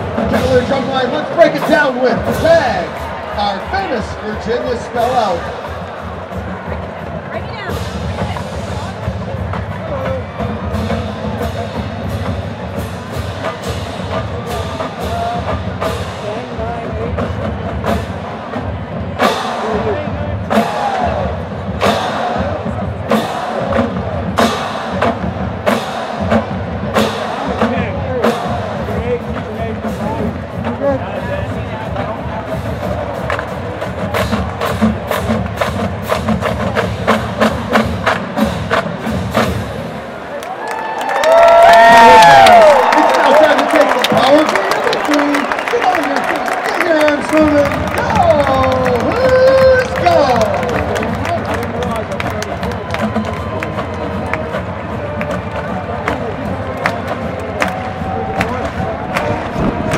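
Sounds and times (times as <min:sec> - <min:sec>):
crowd cheering and yelling: 0:00.0 - 0:59.9
marching drumline cadence: 0:00.0 - 0:59.9.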